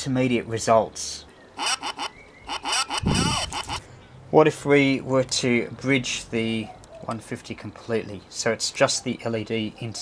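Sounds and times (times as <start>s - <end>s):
garbled electronic voice saying no: 2.9s - 3.8s.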